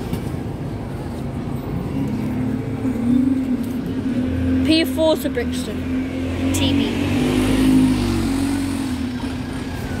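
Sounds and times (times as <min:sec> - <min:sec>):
diesel bus engine hum: 0:00.0 - 0:10.0.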